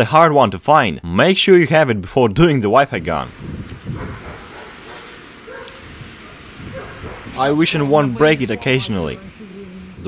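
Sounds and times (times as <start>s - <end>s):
faint outdoor background: 0.0s - 10.0s
distant dog bark: 4.0s - 7.4s.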